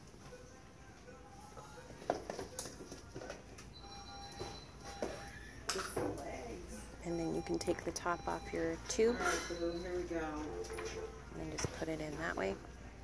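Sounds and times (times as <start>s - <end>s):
faint background music: 0.0s - 13.0s.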